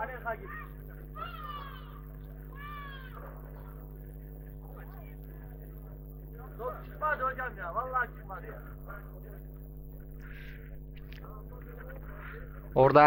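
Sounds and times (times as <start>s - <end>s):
man calling out: 0.0s - 3.6s
steady hum: 0.0s - 13.0s.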